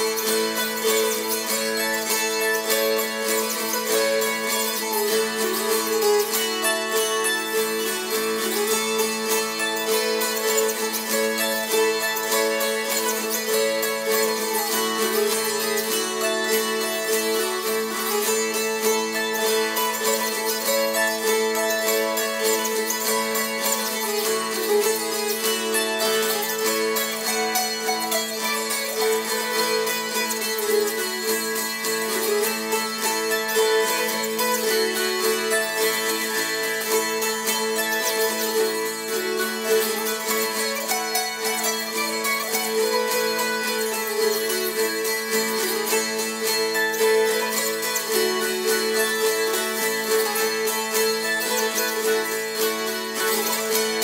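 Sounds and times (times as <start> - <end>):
zither strumming folk tune: 0.0 - 54.0.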